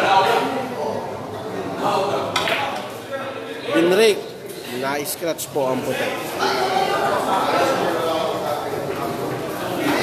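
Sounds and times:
crowd chatter in a hall: 0.0s - 10.0s.

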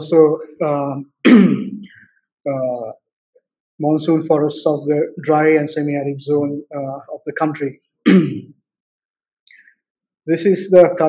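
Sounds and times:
man clearing his throat: 1.2s - 2.0s, 8.1s - 8.5s.

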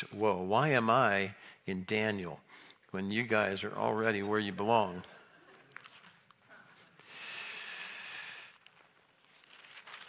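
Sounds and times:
thin pages rustling: 5.5s - 7.0s, 8.6s - 10.0s.

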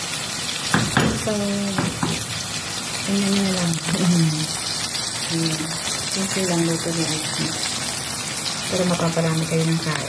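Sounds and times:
food sizzling in a frying pan: 0.0s - 10.0s
spatula knocking against pan: 0.7s - 2.2s.

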